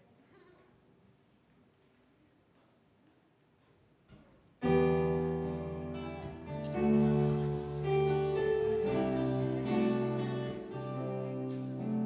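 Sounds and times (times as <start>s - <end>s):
keyboard chord: 4.7s - 12.0s
acoustic guitar chord: 4.9s - 12.0s.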